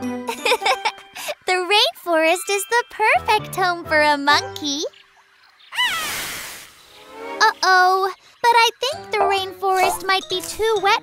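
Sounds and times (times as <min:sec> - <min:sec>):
cartoon dragon squeaky cry: 0:05.7 - 0:06.2
hiss: 0:05.8 - 0:07.0.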